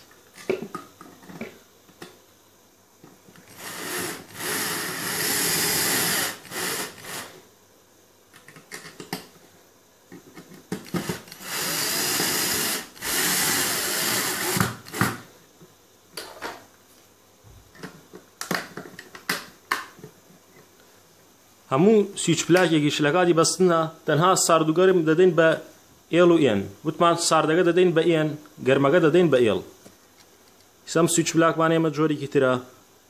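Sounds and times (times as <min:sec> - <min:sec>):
cordless drill driving a screw: 0:03.5 - 0:07.3, 0:11.0 - 0:15.1.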